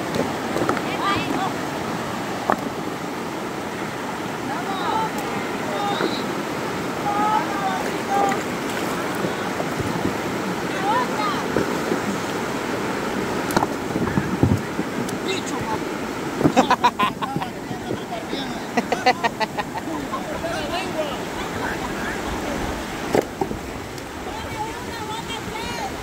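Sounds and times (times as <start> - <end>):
river water rushing over stones: 0.0 - 26.0
faint voices: 4.4 - 12.3, 16.5 - 23.1.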